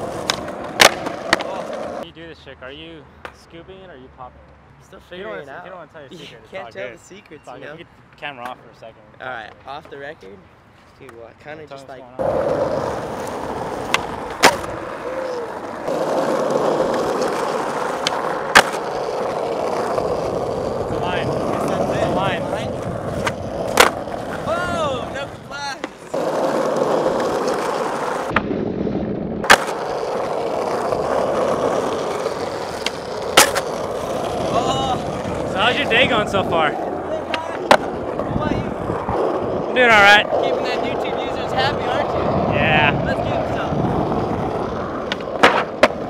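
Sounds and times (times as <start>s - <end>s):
skateboard wheels rolling on asphalt: 0.0s - 2.1s, 12.2s - 46.0s
skateboard knocks: 0.1s - 1.8s, 29.4s - 34.5s, 45.0s - 46.0s.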